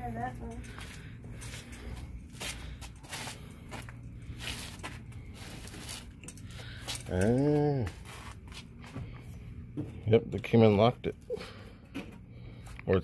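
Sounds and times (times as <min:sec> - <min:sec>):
low steady hum: 0:00.0 - 0:13.0
footsteps on concrete: 0:00.6 - 0:07.1, 0:07.8 - 0:09.2.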